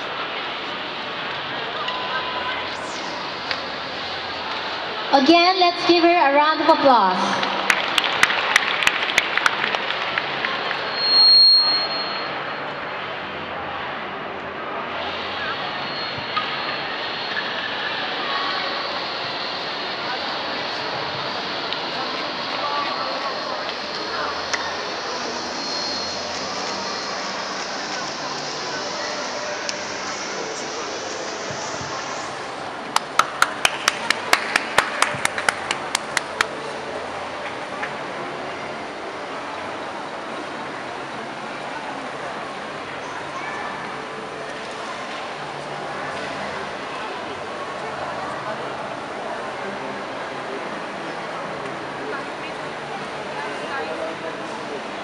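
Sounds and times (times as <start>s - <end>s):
crowd chatter: 0.0s - 55.0s
audience applause: 7.2s - 10.9s, 32.8s - 36.7s
sharp claps: 7.3s - 10.8s, 32.9s - 36.6s.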